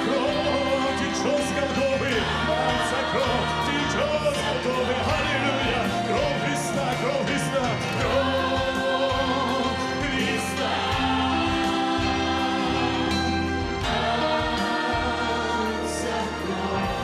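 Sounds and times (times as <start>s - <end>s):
choir singing worship song: 0.0s - 17.0s.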